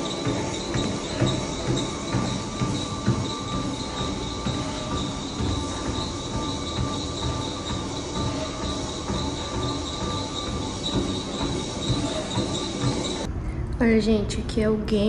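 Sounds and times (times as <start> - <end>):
footsteps on treadmill belt: 0.0 - 13.3
treadmill motor whine: 0.0 - 13.3.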